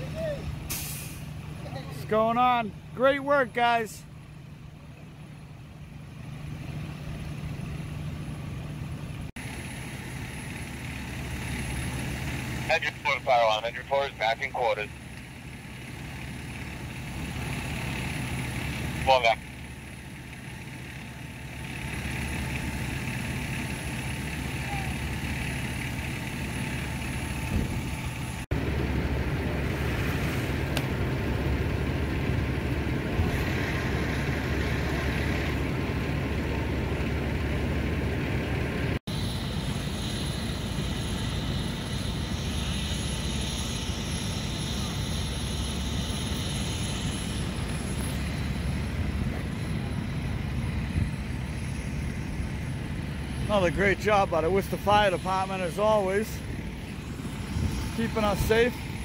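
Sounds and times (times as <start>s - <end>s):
fire engines idling: 0.0s - 59.0s.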